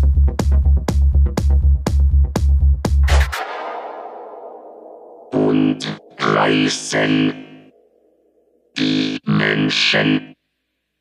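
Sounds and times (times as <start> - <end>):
distorted synth stabs: 3.0 - 7.6
electronic dance music: 3.0 - 7.7.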